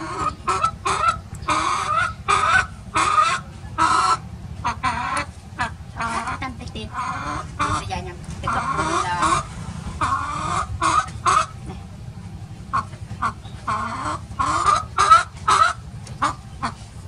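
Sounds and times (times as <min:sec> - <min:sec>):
chicken clucking: 0:00.0 - 0:17.0.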